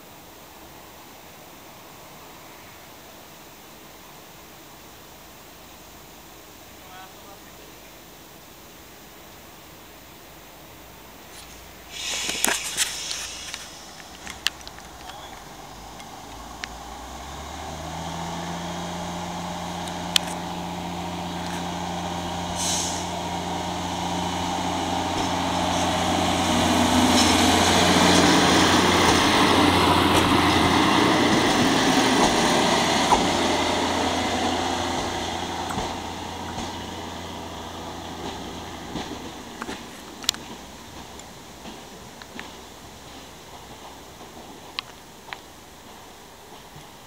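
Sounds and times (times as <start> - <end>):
railbus diesel engine passing: 0.0 - 47.0
short hiss: 11.2 - 16.8, 22.4 - 23.4.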